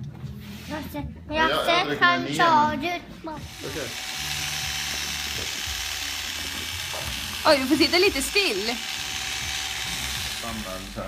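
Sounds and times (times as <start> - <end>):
electric hair clippers buzzing: 3.4 - 11.0.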